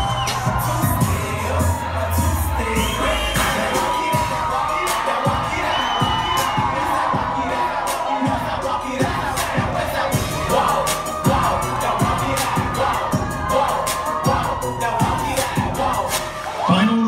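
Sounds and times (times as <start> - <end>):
audience cheering and shouting: 0.0 - 17.0
loud hip hop music: 0.0 - 17.0.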